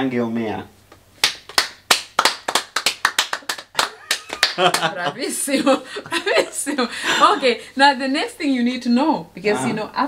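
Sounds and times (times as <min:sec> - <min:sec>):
people clapping hands: 0:01.2 - 0:05.1.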